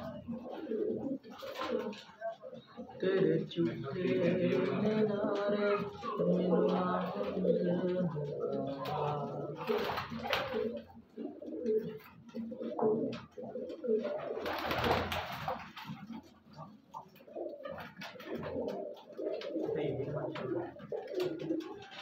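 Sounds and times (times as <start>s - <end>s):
wings flapping: 0.0s - 2.4s, 4.6s - 11.0s, 11.8s - 22.0s
pigeons cooing: 0.0s - 22.0s.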